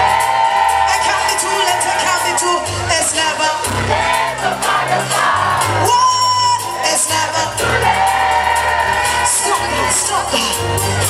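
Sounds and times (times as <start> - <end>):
bass guitar: 0.0 - 11.0
drums: 0.0 - 11.0
live band playing: 0.0 - 11.0.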